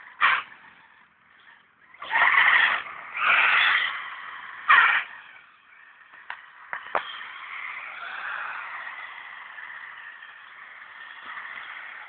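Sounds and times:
buggy driving: 0:00.0 - 0:12.0
tyres skidding on loose ground: 0:00.0 - 0:12.0.

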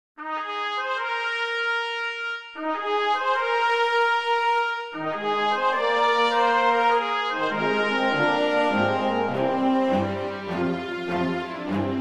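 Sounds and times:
brass melody: 0:00.2 - 0:12.0.

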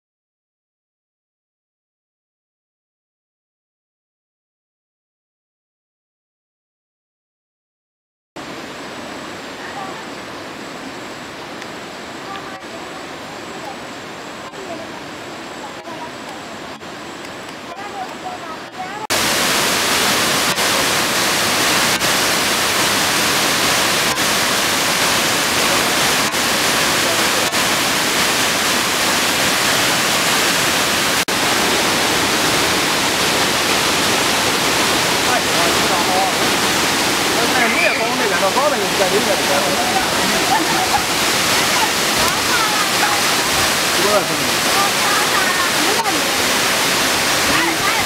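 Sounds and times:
waterfall rushing: 0:08.4 - 0:48.0.

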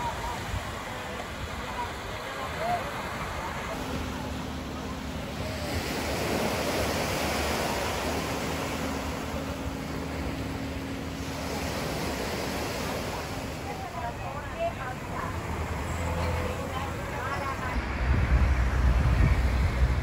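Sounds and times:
small waves breaking on shore: 0:00.0 - 0:20.0.

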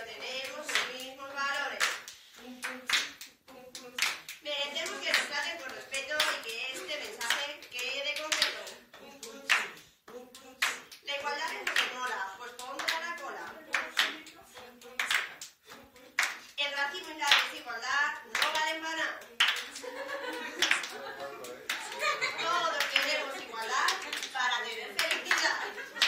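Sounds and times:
people clapping to a beat: 0:00.0 - 0:26.0
voices rapping: 0:00.0 - 0:26.0.

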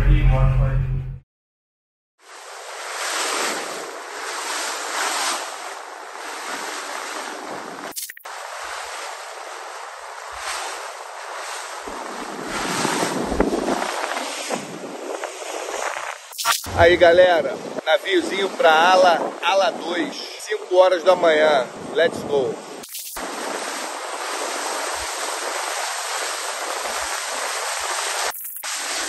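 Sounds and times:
water rushing past boat: 0:02.2 - 0:29.0
wind buffeting microphone: 0:08.6 - 0:20.4, 0:21.2 - 0:28.2.

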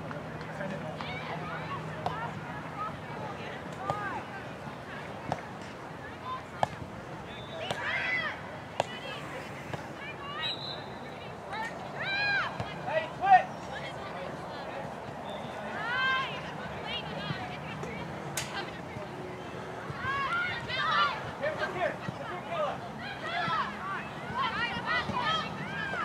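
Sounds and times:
outdoor background noise: 0:00.0 - 0:26.0
distant shouts and calls: 0:07.2 - 0:14.2, 0:19.8 - 0:26.0.

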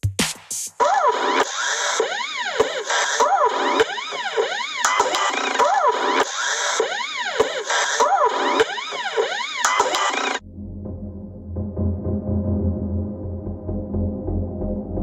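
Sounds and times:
electronic music with siren-like synth: 0:00.8 - 0:15.0.

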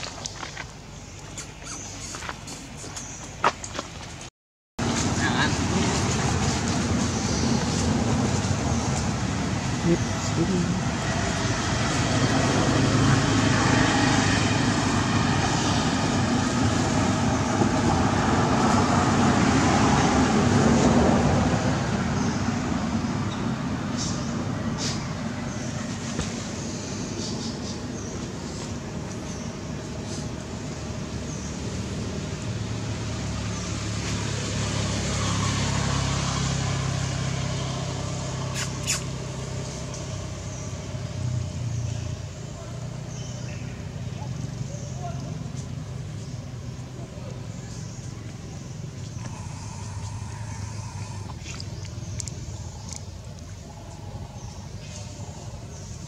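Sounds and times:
vehicle engine humming: 0:00.0 - 0:56.0.

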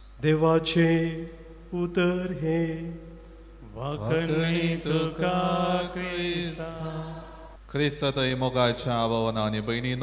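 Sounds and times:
man chanting into microphone: 0:03.6 - 0:10.0.

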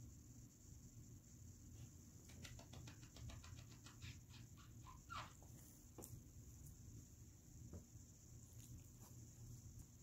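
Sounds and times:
dog squeak: 0:04.0 - 0:05.4.

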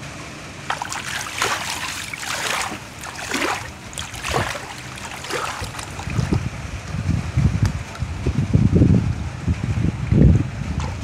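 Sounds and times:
wind buffeting microphone: 0:00.8 - 0:11.0.

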